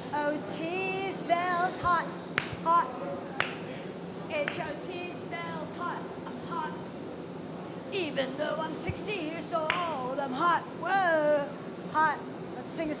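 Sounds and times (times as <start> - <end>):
steady low background noise: 0.0 - 13.0.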